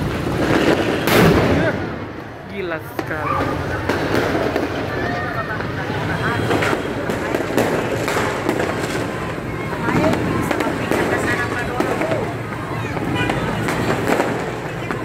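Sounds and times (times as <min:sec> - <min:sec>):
fireworks cracking and popping: 0:00.0 - 0:15.0.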